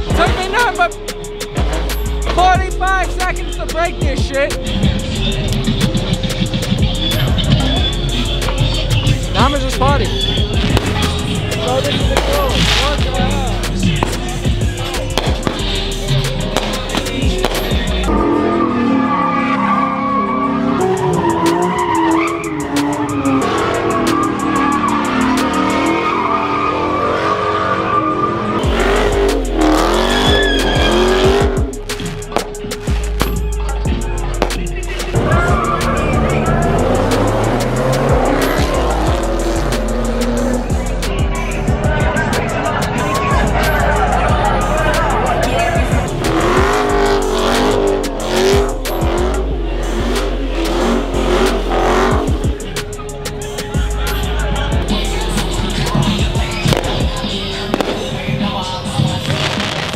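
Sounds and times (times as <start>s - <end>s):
car engine revving: 0.0s - 59.9s
music with heavy bass: 0.0s - 59.9s
tyres squealing: 0.0s - 59.9s.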